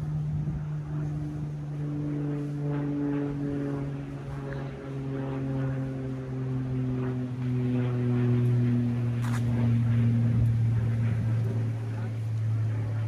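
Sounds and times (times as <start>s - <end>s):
low engine drone: 0.0s - 13.0s.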